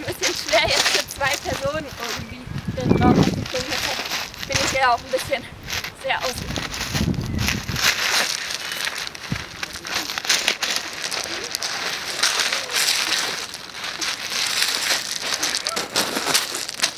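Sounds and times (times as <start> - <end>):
gravel crunching under crawling: 0.0 - 16.9.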